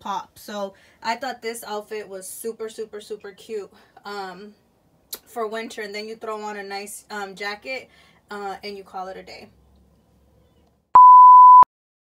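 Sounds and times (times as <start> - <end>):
electronic beep: 11.0 - 11.7.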